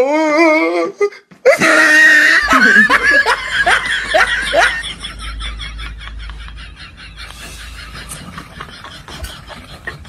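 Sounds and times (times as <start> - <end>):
person laughing: 1.5 - 10.0.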